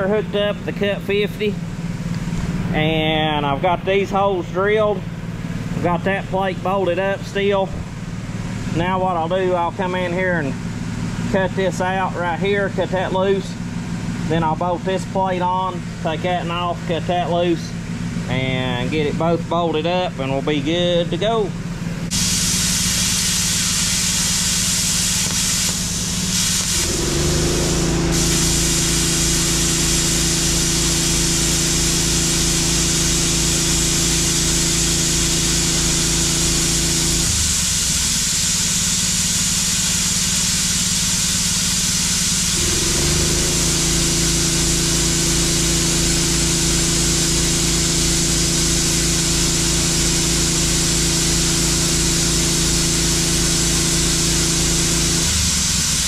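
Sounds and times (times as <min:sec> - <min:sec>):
plasma torch hissing: 0:22.1 - 0:56.0.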